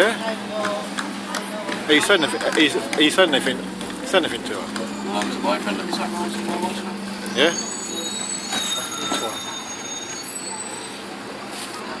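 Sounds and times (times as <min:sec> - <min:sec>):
people talking indistinctly: 0:00.0 - 0:10.9
street noise hum: 0:00.0 - 0:12.0
high-pitched squealing tones: 0:03.5 - 0:11.3.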